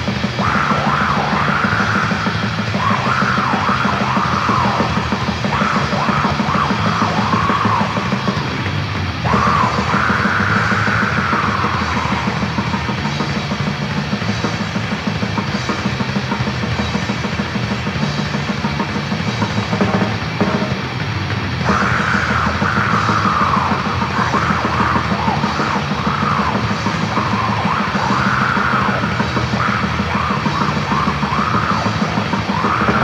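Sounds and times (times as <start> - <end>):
distorted guitars: 0.0 - 33.0
fast dense drumming: 0.0 - 33.0
harsh shrieked vocals: 0.0 - 33.0.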